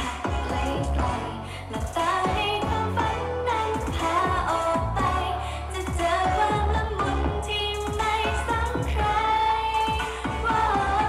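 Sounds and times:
steady kick-drum beat: 0.0 - 11.0
women singing pop song: 0.0 - 11.0.

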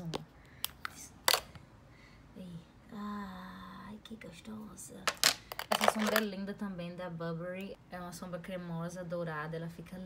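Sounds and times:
plastic pots clicking together: 5.1 - 6.3.

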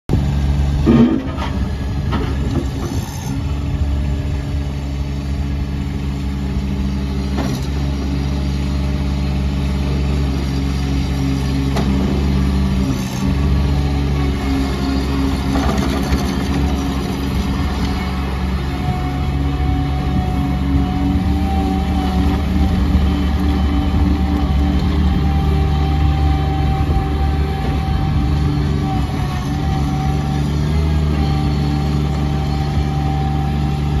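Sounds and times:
diesel engine running: 0.1 - 34.0.

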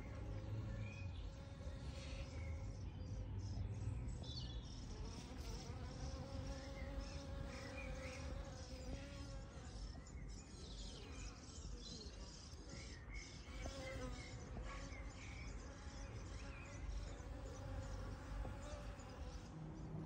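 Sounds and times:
honeybees buzzing: 4.7 - 9.8.

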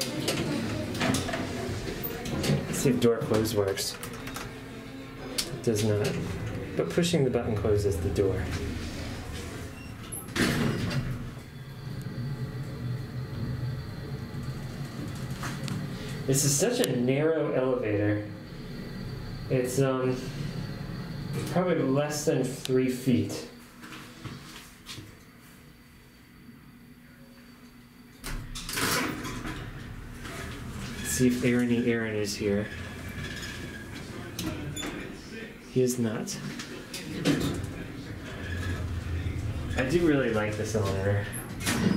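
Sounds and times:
door mechanism running: 0.0 - 22.0, 28.2 - 35.2, 36.6 - 41.9
elevator low hum: 0.0 - 24.5, 25.3 - 41.9
elevator door closing with thump: 7.8 - 11.5, 37.0 - 41.9.

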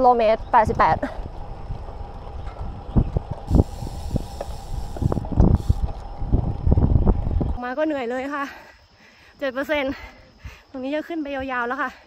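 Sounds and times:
bumps and rattles: 0.0 - 7.6
wind noise: 0.0 - 8.9
bicycle road rumble: 0.0 - 12.0.

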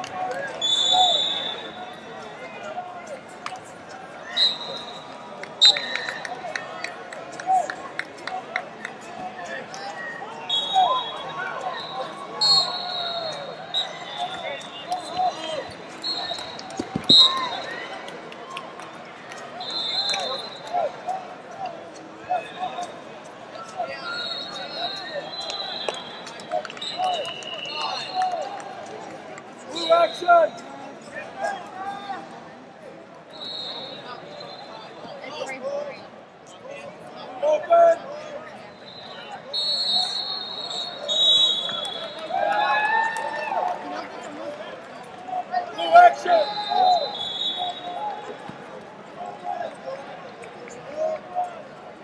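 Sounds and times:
shouts and chatter: 0.0 - 52.0
referee whistle blasts: 0.6 - 1.9, 4.3 - 6.2, 10.5 - 17.8, 19.6 - 20.8, 24.0 - 28.3, 33.3 - 35.1, 38.7 - 42.4, 46.1 - 48.1.

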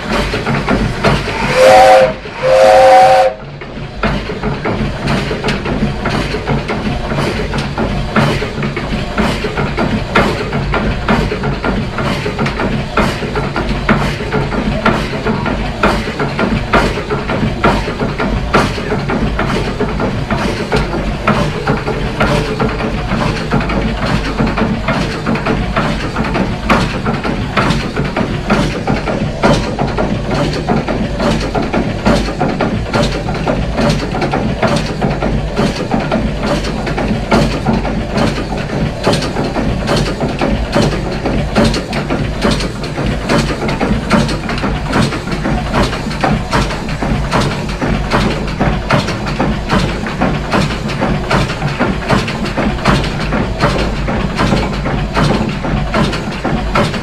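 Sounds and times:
steam winch engine running: 0.0 - 57.0.

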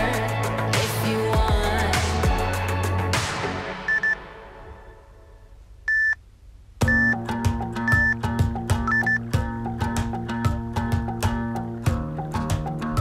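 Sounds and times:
music with steady beat: 0.0 - 4.6, 6.8 - 13.0
interval timer beeps: 3.9 - 4.2, 5.9 - 6.2, 6.8 - 9.4.

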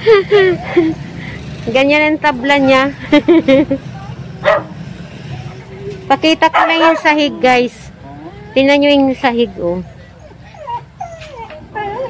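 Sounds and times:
small dog whining: 7.2 - 12.0.

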